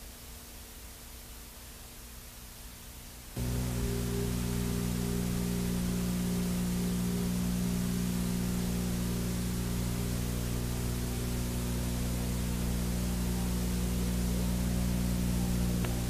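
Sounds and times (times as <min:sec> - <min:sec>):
tape hiss: 0:00.0 - 0:16.0
electrical hum: 0:03.4 - 0:16.0.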